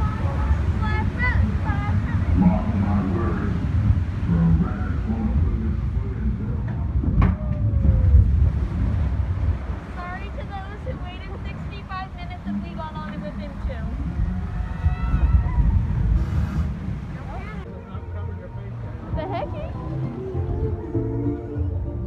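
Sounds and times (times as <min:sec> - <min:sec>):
wind on microphone: 0:00.0 - 0:17.8
rumble of water: 0:00.0 - 0:22.0
voices: 0:00.0 - 0:22.0.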